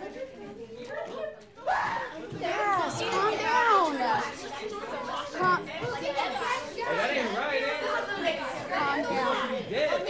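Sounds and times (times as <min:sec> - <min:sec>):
schoolchildren talking and exclaiming: 0:00.0 - 0:10.0.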